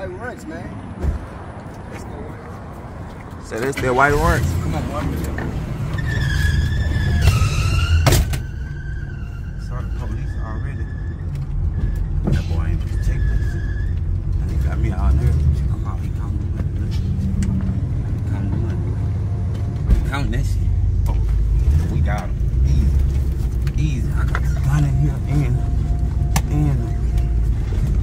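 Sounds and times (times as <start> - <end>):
car engine and road noise: 0.0 - 28.0
high wavering squeal: 5.8 - 12.2.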